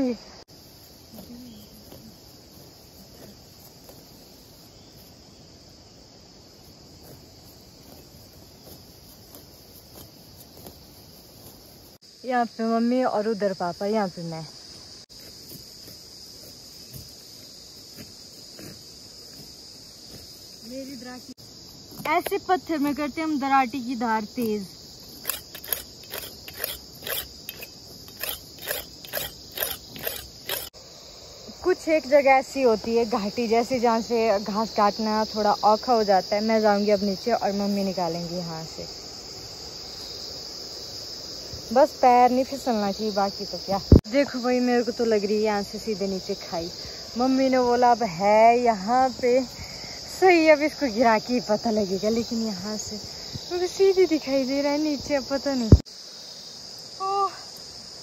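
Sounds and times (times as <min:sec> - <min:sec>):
insects chirring: 0:00.0 - 0:58.0
grass being cut by hand: 0:07.0 - 0:11.7, 0:25.0 - 0:30.8
blade scraping on whetstone: 0:25.2 - 0:30.7.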